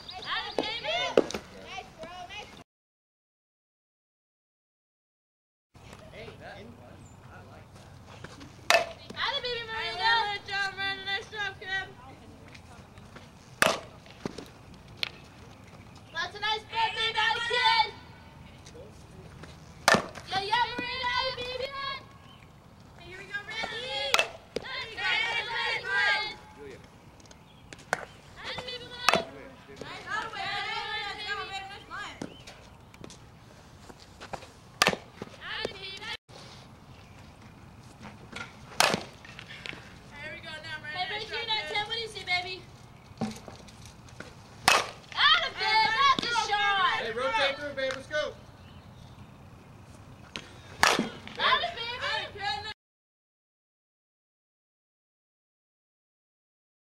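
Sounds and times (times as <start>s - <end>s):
bat hitting softball: 8.6s - 10.2s, 13.6s - 14.4s, 19.8s - 21.8s, 23.5s - 26.5s, 27.7s - 32.6s, 34.8s - 36.1s, 38.3s - 39.8s, 44.6s - 47.1s, 50.3s - 52.2s.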